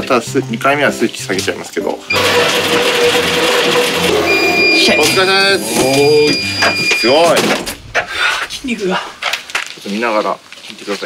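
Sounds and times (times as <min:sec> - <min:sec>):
exercise bike flywheel whirring: 0:02.1 - 0:05.1
steady high whine: 0:04.1 - 0:09.8.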